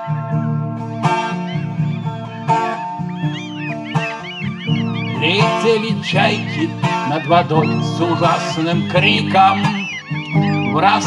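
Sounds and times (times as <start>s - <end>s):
acoustic guitar strumming: 0.0s - 11.0s
gull cries: 0.0s - 11.0s.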